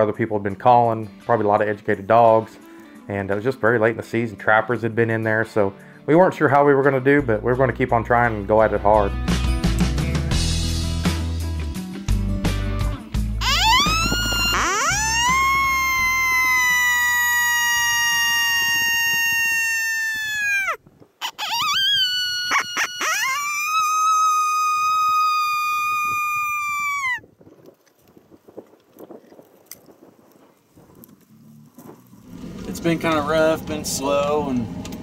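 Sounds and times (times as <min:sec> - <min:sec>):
faint wind noise: 0:13.4 - 0:23.0, 0:24.8 - 0:34.8
coyote howls from predator call: 0:13.4 - 0:27.2.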